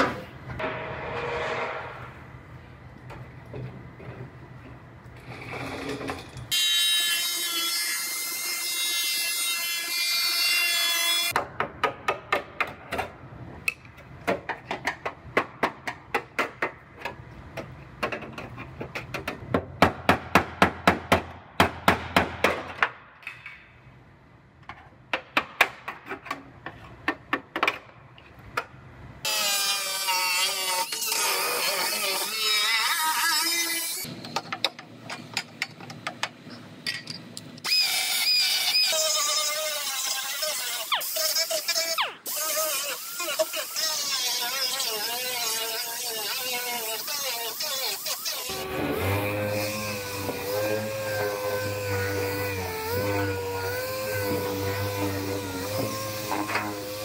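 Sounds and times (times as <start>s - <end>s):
pneumatic cut-off wheel whining: 37.6s - 57.0s.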